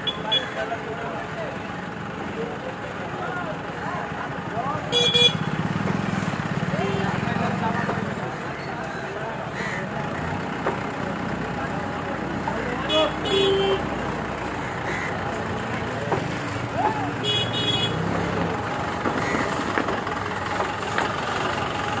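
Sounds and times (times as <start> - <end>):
street traffic noise: 0.0 - 22.0
vehicle horn double toot: 4.9 - 5.6, 12.9 - 13.9, 17.2 - 18.1
crows cawing: 8.9 - 9.9, 14.6 - 15.3, 19.1 - 19.6.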